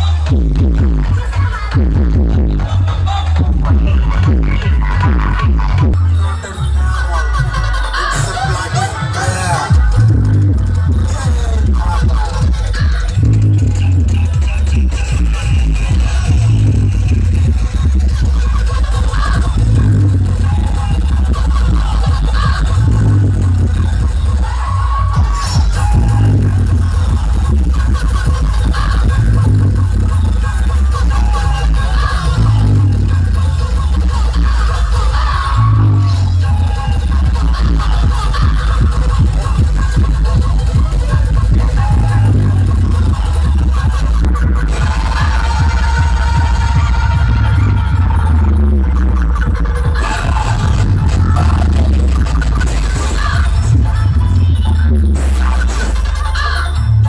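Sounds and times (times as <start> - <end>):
heavy sub-bass: 0.0 - 57.0
loud electronic dance music: 0.0 - 57.0.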